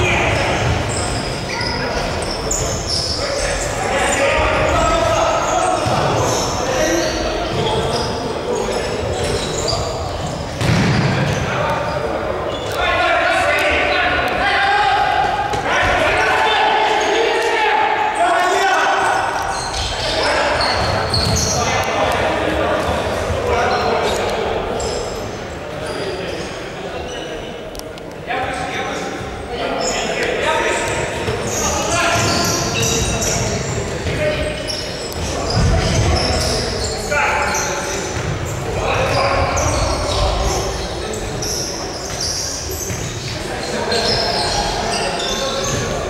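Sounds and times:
players shouting: 11.2s - 24.8s.

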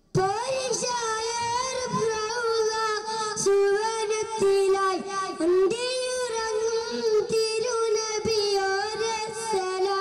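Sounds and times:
boy singing into microphone: 0.0s - 10.0s.

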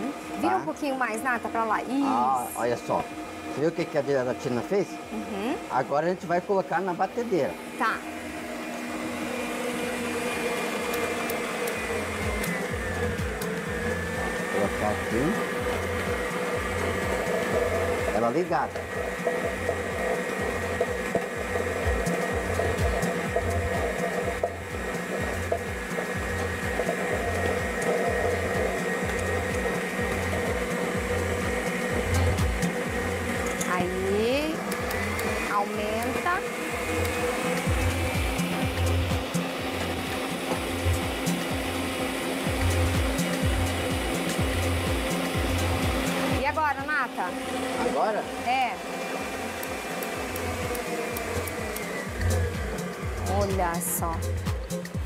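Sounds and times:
stand mixer motor whining: 0.0s - 55.0s.

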